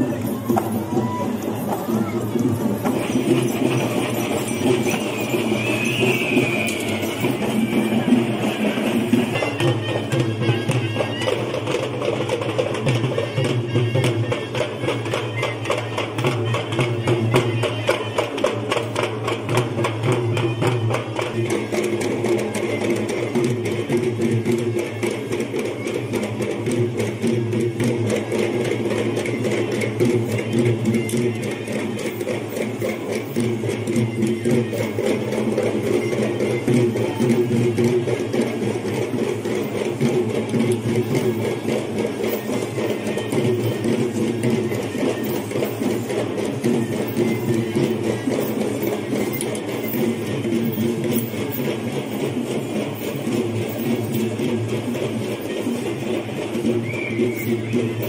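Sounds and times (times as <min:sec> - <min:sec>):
fast continuous drumming: 0:00.0 - 0:58.0.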